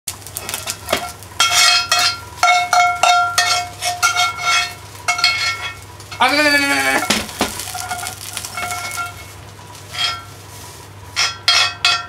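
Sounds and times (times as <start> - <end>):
metal spoon scraping frying pan: 0.4 - 5.8, 7.7 - 10.4.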